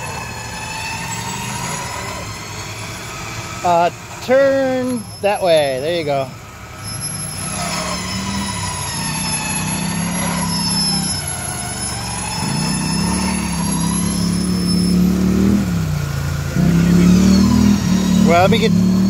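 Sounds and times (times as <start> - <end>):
electric winch whining under load: 0.0 - 19.0
vehicle engine revving: 6.7 - 19.0.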